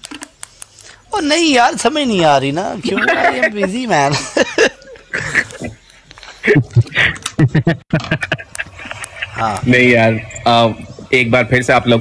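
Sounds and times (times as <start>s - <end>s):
man laughing: 2.9s - 5.8s, 6.4s - 8.9s.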